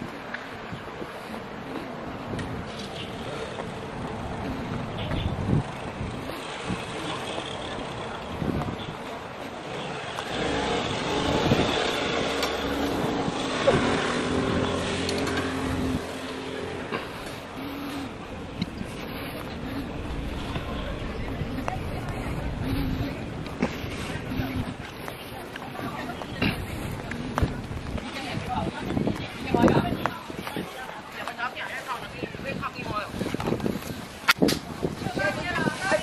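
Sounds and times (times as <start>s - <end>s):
faint voices: 0.0s - 36.0s.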